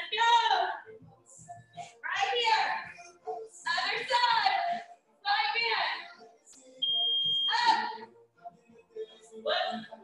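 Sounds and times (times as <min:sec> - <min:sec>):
high-pitched timer beep: 0:06.8 - 0:07.6.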